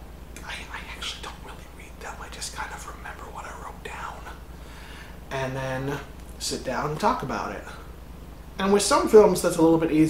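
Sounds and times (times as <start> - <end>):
faint low hum: 0.0 - 10.0
man whispering: 0.4 - 4.5.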